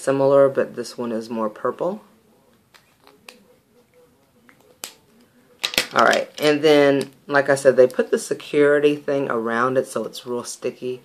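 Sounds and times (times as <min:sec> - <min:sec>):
plastic tubes clicking: 0:05.6 - 0:07.2.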